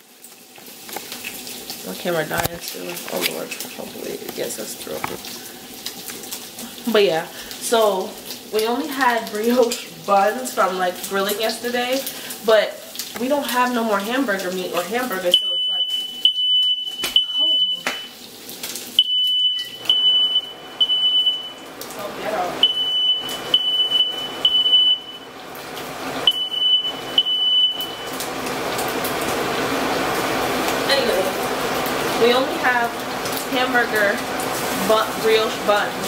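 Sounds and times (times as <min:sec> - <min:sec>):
smoke alarm beeping: 0:15.0 - 0:18.2, 0:19.0 - 0:21.7, 0:22.6 - 0:25.4, 0:26.2 - 0:28.3.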